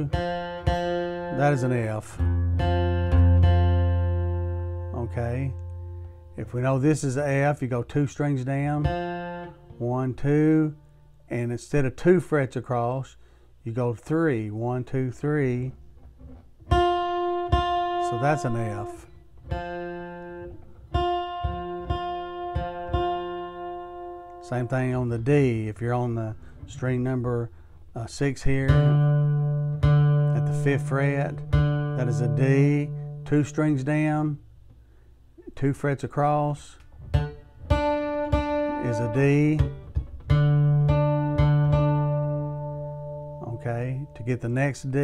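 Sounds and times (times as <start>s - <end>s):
acoustic guitar plucked notes: 0.0s - 11.5s, 15.0s - 27.7s, 28.4s - 34.4s, 35.4s - 45.0s.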